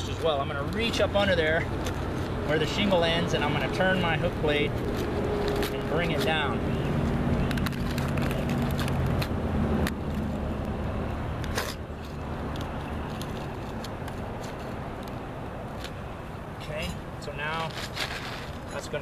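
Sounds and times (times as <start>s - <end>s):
vehicle engine hum: 0.0s - 19.0s.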